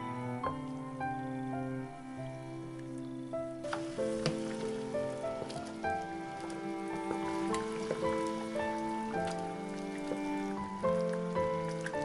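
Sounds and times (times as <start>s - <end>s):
background music of held notes: 0.0s - 12.0s
liquid bubbling in saucepan: 3.7s - 12.0s.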